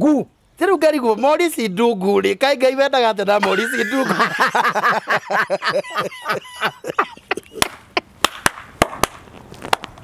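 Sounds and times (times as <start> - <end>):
men laughing: 3.4 - 8.2
sharp knocks or claps: 7.6 - 9.8.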